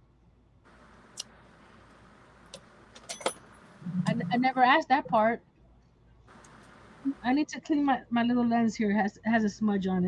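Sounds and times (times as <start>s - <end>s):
faint steady hiss: 0.6s - 9.8s.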